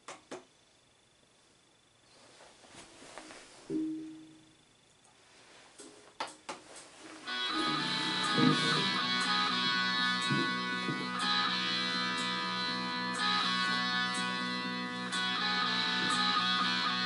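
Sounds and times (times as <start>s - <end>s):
electric guitar note ringing: 3.7s - 4.6s, 7.2s - 17.0s
loud electric guitar music: 7.3s - 17.0s.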